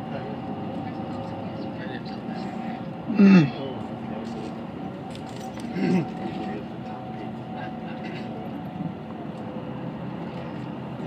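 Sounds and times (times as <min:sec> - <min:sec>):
coach engine and road noise: 0:00.0 - 0:11.0.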